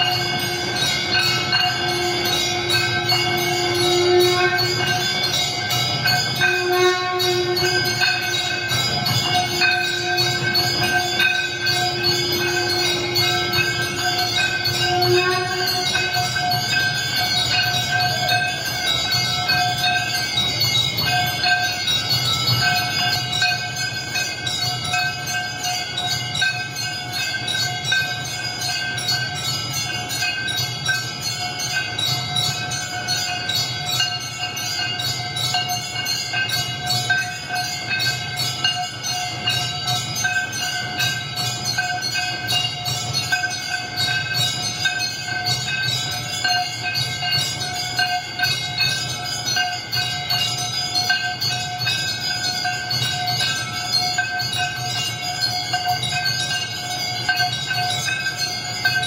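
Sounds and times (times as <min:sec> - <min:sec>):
held droning tones: 0:00.0 - 0:34.7
temple bells ringing: 0:00.0 - 0:59.0.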